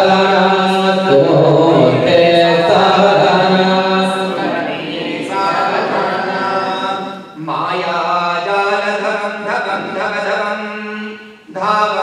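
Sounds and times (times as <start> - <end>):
voices chanting a mantra: 0.0 - 12.0.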